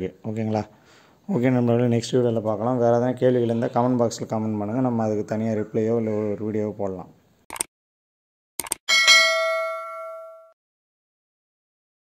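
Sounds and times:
notification bell ding: 8.9s - 10.6s.

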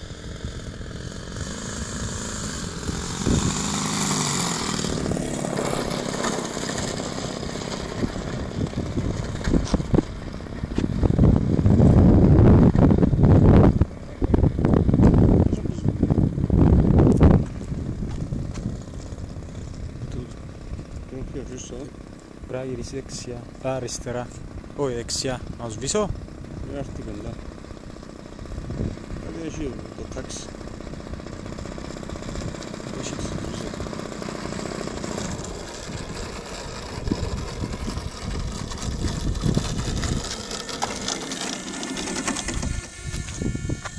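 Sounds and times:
heavy low rumbles: 0.0s - 3.9s, 8.0s - 41.1s
model plane engine idling: 0.0s - 43.9s.

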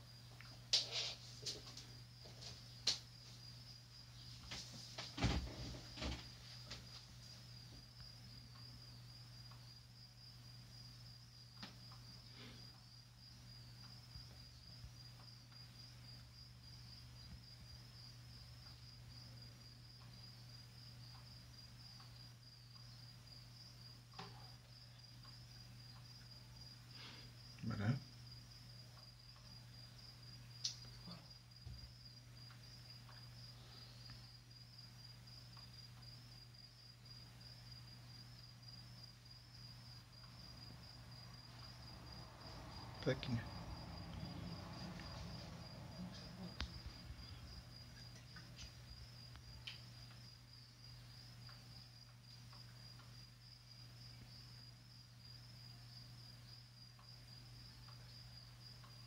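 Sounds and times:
cricket chirping: 0.0s - 59.0s.

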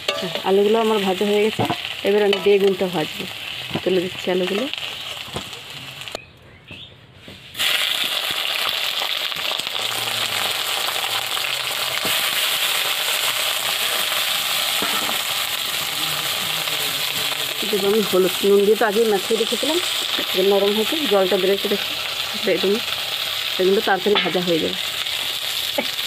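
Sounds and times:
eggplant frying in hot oil: 0.0s - 6.2s, 7.5s - 26.0s.

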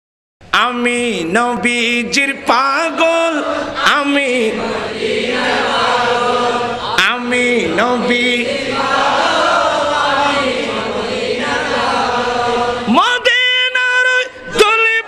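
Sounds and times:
man chanting melodically: 0.5s - 4.9s, 6.8s - 8.8s, 12.8s - 15.0s.

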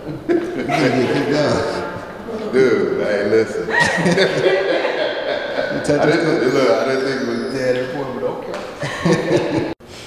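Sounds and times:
people chuckling: 0.0s - 1.8s, 3.6s - 7.7s, 8.6s - 9.8s
people talking: 0.0s - 9.8s.

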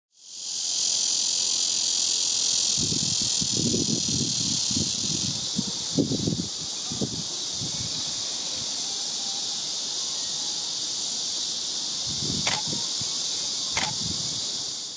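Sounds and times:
high-pitched hiss: 0.1s - 14.9s
high-pitched insect chorus: 0.1s - 14.9s
sharp clicks: 12.5s - 12.7s, 13.8s - 14.0s.

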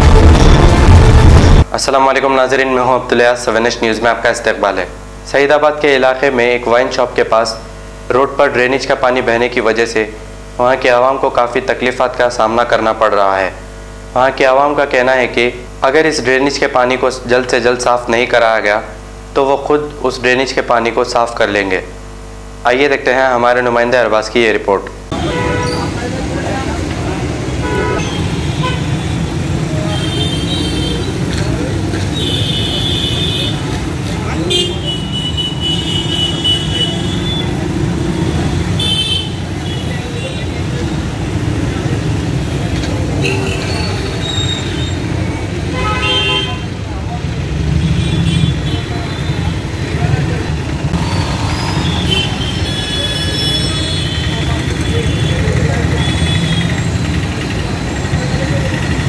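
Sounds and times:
vehicle horn toots: 25.1s - 26.0s, 27.6s - 31.3s, 32.1s - 33.7s, 34.4s - 37.6s, 38.2s - 40.6s, 43.2s - 45.0s, 45.7s - 46.8s, 47.8s - 49.5s, 51.0s - 56.8s
traffic rumble: 25.1s - 59.0s
crowd voices: 48.6s - 59.0s.

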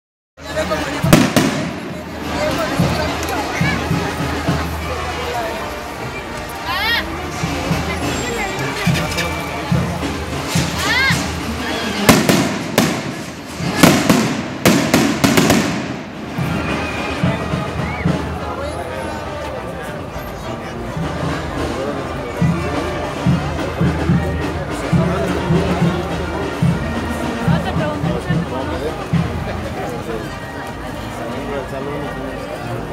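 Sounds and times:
crowd chatter: 0.4s - 32.9s
skyrocket bangs: 12.1s - 16.2s.

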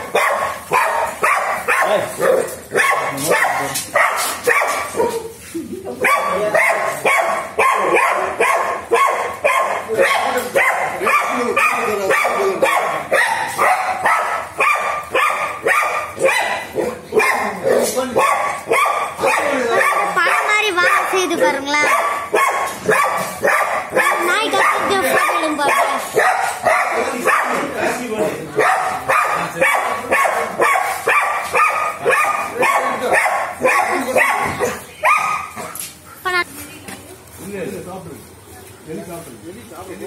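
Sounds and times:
dog barking: 0.0s - 5.3s, 6.0s - 35.8s.

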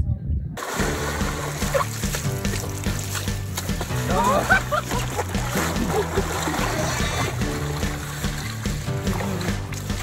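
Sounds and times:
background music: 0.6s - 10.0s
water splashing in a tub: 0.6s - 10.0s.

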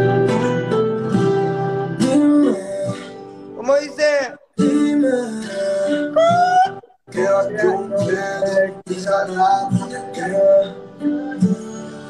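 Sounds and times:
backing track: 0.0s - 12.0s
man singing long sliding notes: 4.6s - 11.6s.

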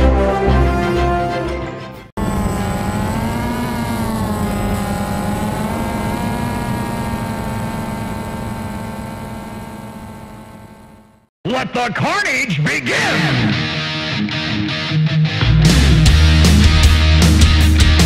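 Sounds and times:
drone motors humming: 2.2s - 11.3s.

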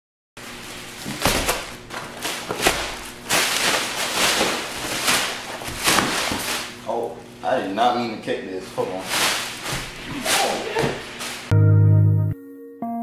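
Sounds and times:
plastic wrapping crinkling: 0.4s - 7.4s, 8.6s - 11.5s
dull thuds: 9.0s - 11.5s.

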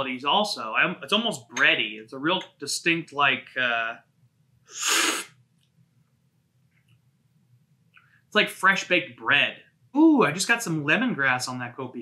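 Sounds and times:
loud hissy slurp: 4.7s - 5.4s.

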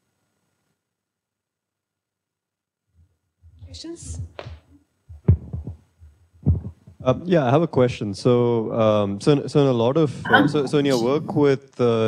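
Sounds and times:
microphone handling thumps: 3.4s - 8.0s.

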